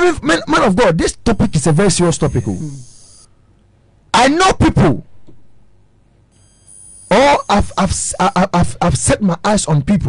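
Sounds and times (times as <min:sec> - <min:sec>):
high-pitched electronic tone: 0:01.3 - 0:03.3, 0:06.4 - 0:08.5.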